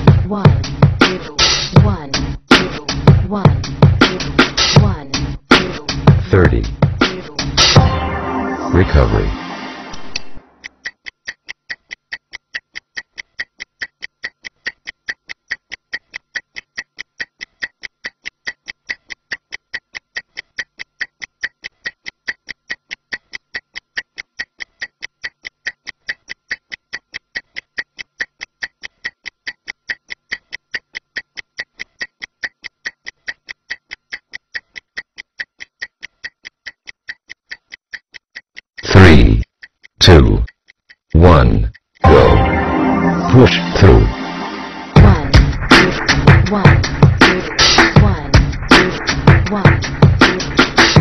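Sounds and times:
music: 0.0s - 10.7s, 42.0s - 51.0s
stopwatch ticking: 10.6s - 42.0s, 45.0s - 51.0s.

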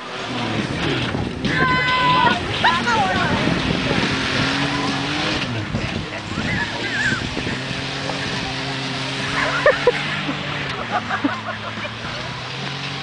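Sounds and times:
pickup truck engine revving: 0.0s - 13.0s.

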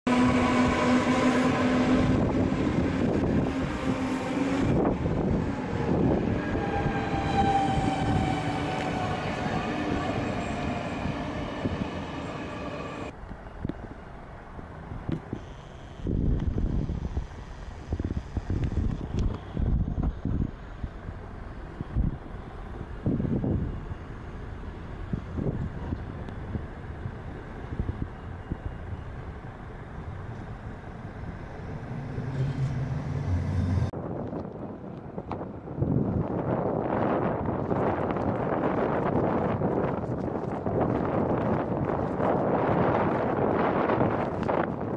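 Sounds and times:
wind gusting against microphone: 0.1s - 13.8s, 14.6s - 44.9s
street ambience: 0.1s - 44.9s
electric train motor whine: 30.8s - 33.9s.

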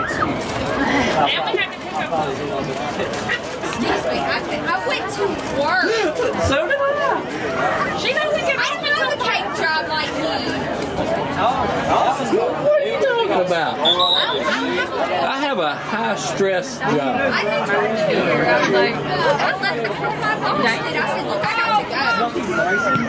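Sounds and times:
indistinct chatter of people: 0.0s - 23.0s.

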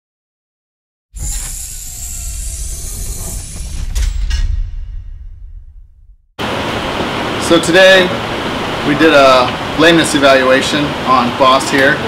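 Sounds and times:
bright high hiss: 1.2s - 4.4s
low rumble: 1.2s - 6.4s.

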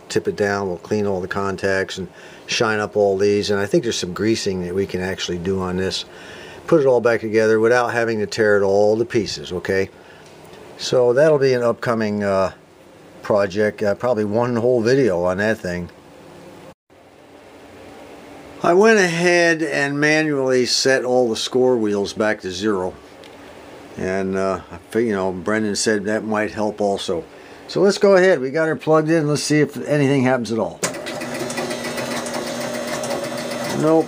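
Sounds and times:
pinball score motor running: 30.8s - 34.0s.

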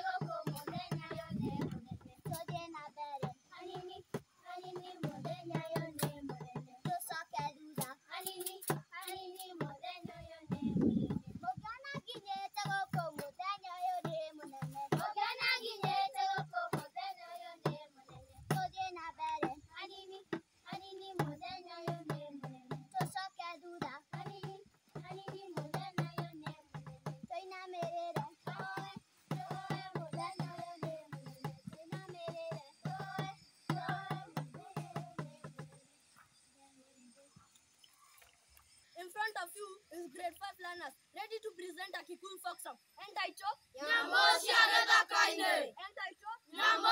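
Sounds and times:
girls singing folk song: 0.0s - 35.9s, 43.8s - 45.8s, 46.4s - 46.9s.

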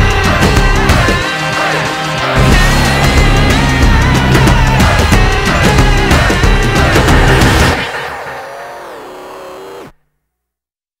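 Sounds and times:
rock music chord sliding down: 2.3s - 10.0s.

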